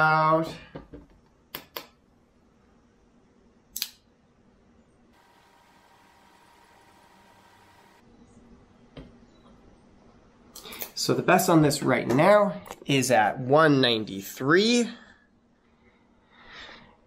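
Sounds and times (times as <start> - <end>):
sharp click: 3.8 - 4.0.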